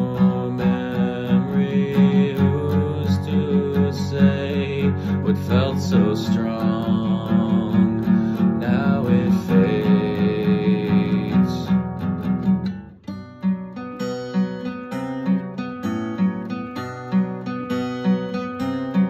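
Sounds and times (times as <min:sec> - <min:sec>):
man singing long note: 0:00.0 - 0:11.7
acoustic guitar strumming: 0:00.0 - 0:19.0.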